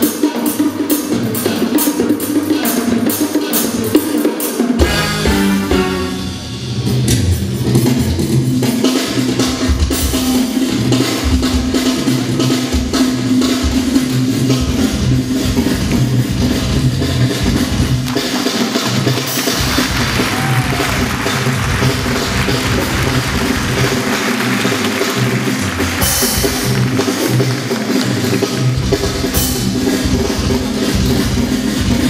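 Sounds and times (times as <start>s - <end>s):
drum kit beat: 0.0s - 32.0s
live band dance music: 0.0s - 32.0s.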